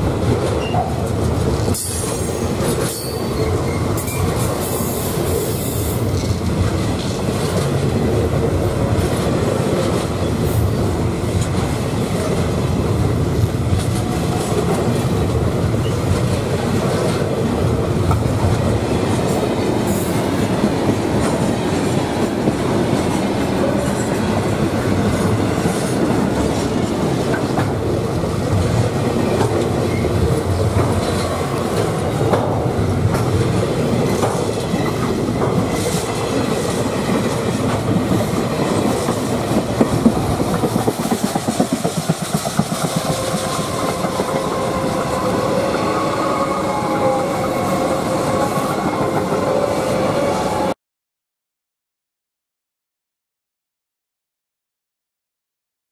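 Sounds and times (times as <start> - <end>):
freight train wheels rumbling on rail: 0.0 - 50.8
high-pitched wheel squeals: 1.8 - 4.3.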